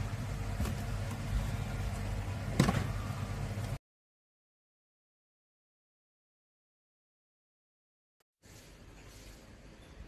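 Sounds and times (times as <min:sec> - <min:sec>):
low machine hum: 0:00.0 - 0:03.8.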